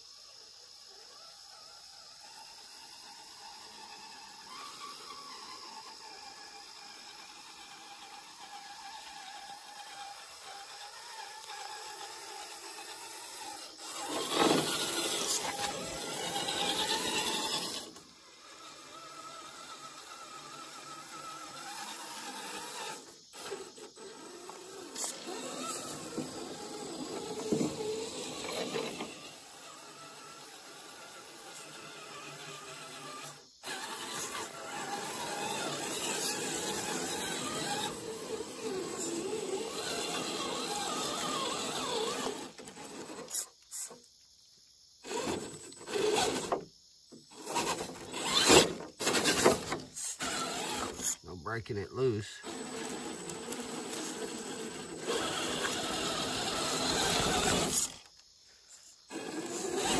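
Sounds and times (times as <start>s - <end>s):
electric motor and gears whining: 0.1s - 59.9s.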